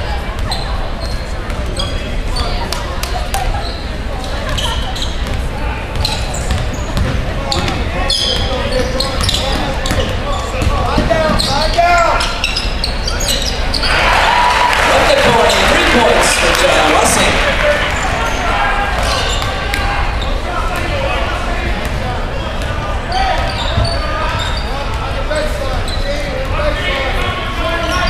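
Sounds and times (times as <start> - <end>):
sneakers squeaking: 0.0 - 28.0
spectators and players chattering: 0.0 - 28.0.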